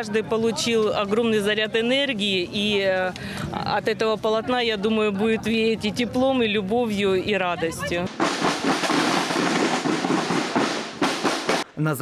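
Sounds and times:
marching snare drums: 8.0 - 11.7.

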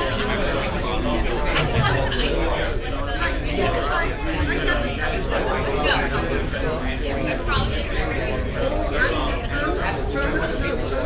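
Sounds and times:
many people chatting: 0.0 - 11.0.

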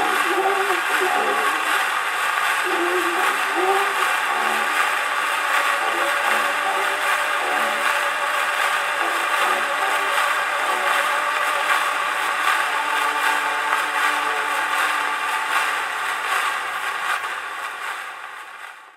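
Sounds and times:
faint old recorded singing: 0.0 - 16.4
record surface hiss and crackle: 0.0 - 18.9.

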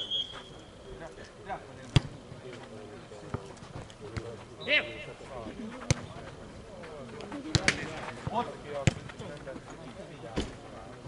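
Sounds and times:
ball strikes: 1.9 - 2.2, 5.8 - 6.3, 7.4 - 9.2.

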